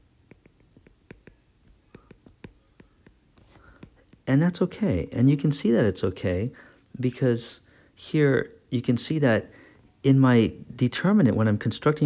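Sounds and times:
stylus tapping on glass screen: 0.0 - 4.3.

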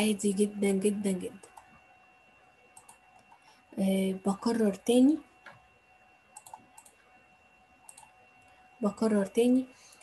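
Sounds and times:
faint electrical hum: 0.0 - 10.0
computer mouse clicks: 1.4 - 1.7, 2.7 - 3.4, 6.3 - 7.0, 7.8 - 8.5.

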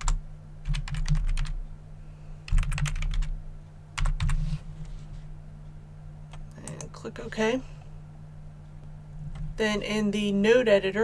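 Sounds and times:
computer keyboard typing: 0.0 - 1.6, 2.5 - 3.4, 4.0 - 4.4.

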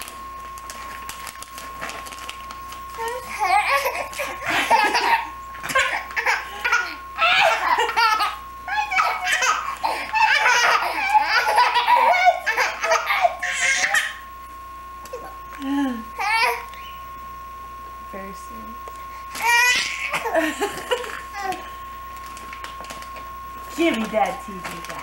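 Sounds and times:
infant belly-laughing: 3.3 - 14.1.

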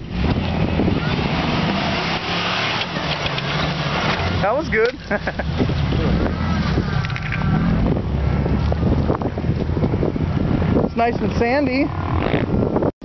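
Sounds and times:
engine running under load: 0.0 - 10.8
wind noise on microphone: 0.0 - 13.0.

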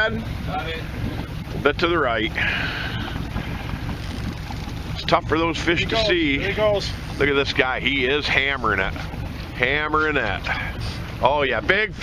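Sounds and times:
boat engine rumble: 0.0 - 12.0
water noise: 0.0 - 12.0
wind: 0.0 - 12.0.

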